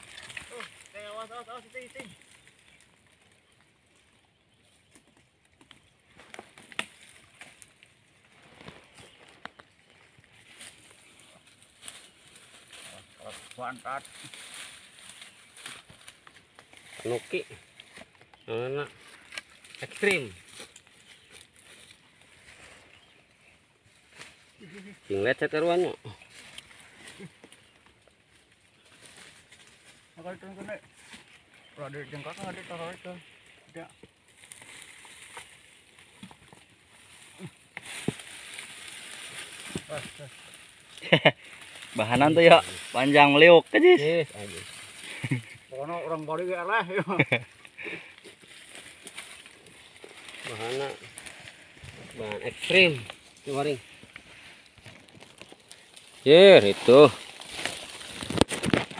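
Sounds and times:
dry leaves and twigs crackling: 0.0 - 58.9.

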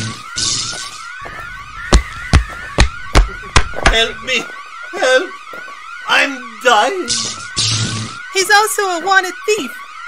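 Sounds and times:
alarm siren wailing: 0.0 - 10.0
heavy thuds: 1.2 - 4.6.

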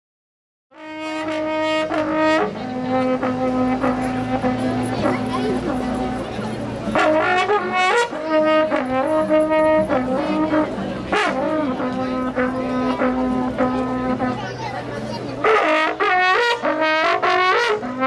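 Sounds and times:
horn playing long notes: 0.7 - 14.6, 15.4 - 18.0
voices: 1.1 - 18.0.

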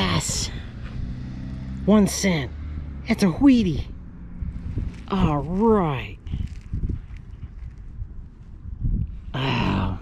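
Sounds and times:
wind buffeting microphone: 2.8 - 10.0
breathy vocal sound: 9.3 - 10.0.

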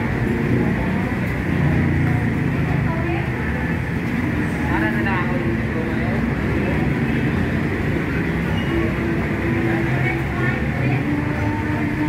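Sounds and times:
people chattering: 0.0 - 12.0
road traffic rumble: 0.0 - 12.0.

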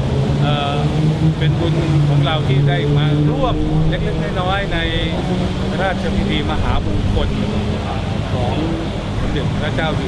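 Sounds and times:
vehicle engines droning: 0.0 - 10.0
man speaking: 0.4 - 10.0.

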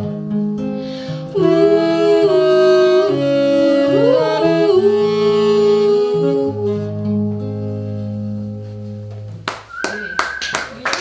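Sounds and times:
guitar and saxophone chord: 0.0 - 9.3
audience clapping: 9.4 - 11.0.

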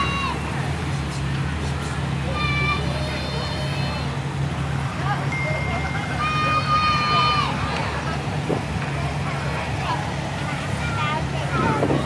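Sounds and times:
cars idling: 0.0 - 12.0
faint voices: 0.0 - 12.0.

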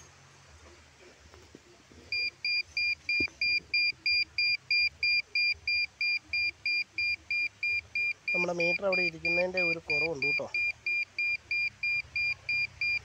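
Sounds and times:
short high beeps: 2.1 - 13.0.

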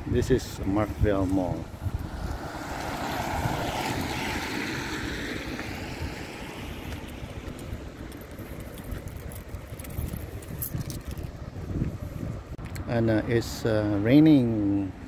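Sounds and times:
wind rumble on microphone: 0.0 - 13.3
car tyres hissing on wet road: 2.1 - 7.2.

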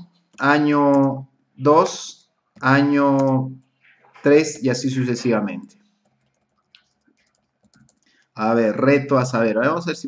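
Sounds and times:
keyboard and mouse clicks: 0.0 - 1.2, 2.6 - 3.5, 5.3 - 8.2.

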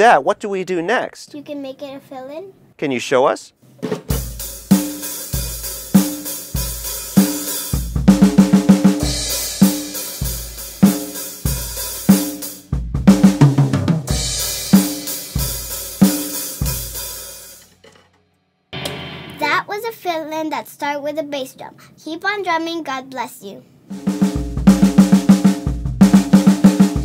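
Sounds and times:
drum kit playing beat: 3.8 - 17.8, 18.8 - 19.6, 23.9 - 27.0
tom fill falling in pitch: 18.8 - 19.6.

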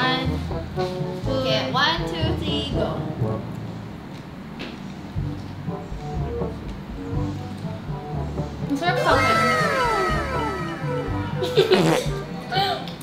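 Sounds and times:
music with steady beat: 5.1 - 12.4
women talking: 8.8 - 10.2
tones gliding downward: 9.0 - 11.9
women laughing: 9.0 - 12.8.

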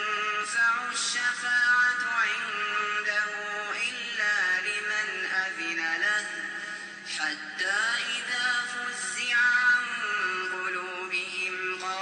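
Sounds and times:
man reciting melodically: 0.0 - 12.0.

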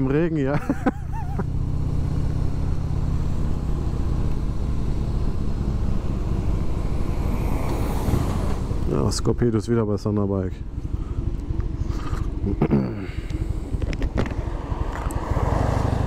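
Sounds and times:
motorcycle engine cruising: 0.0 - 16.0
wind: 0.0 - 16.0.

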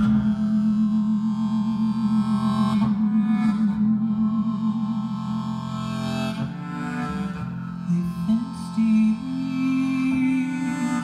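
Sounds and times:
harmonica wavering note: 0.0 - 11.0
shruti box drone: 0.0 - 11.0.

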